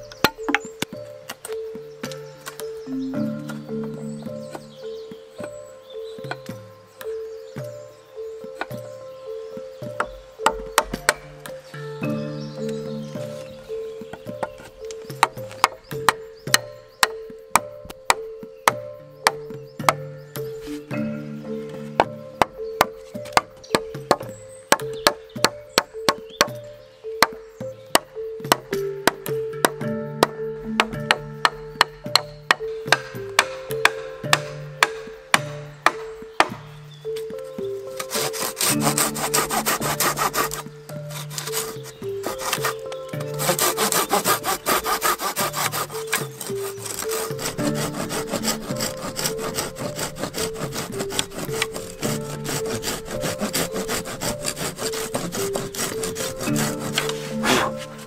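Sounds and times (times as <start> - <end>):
background music: 0.0 - 58.0
sharp knocks on wood: 9.8 - 11.6
hand saw cutting wood: 37.9 - 58.0.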